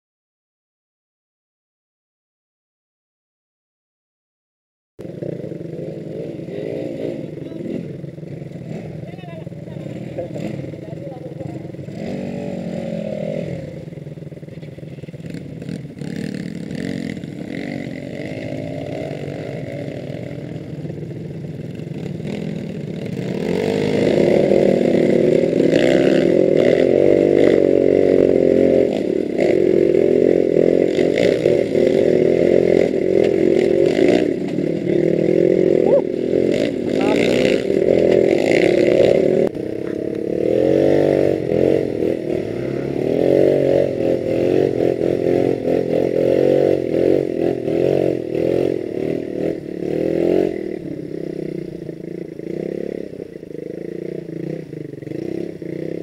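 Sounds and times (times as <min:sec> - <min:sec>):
motorcycle engine revving: 0:05.0 - 0:56.0
motorcycle rattling: 0:05.0 - 0:56.0.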